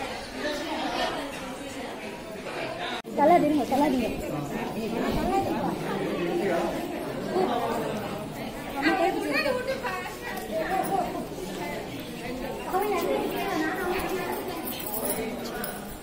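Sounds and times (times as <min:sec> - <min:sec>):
indistinct chatter echoing: 0:00.0 - 0:16.0.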